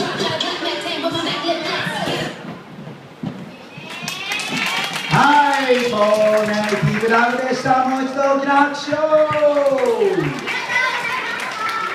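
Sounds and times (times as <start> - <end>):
audience voices: 3.4 - 11.9.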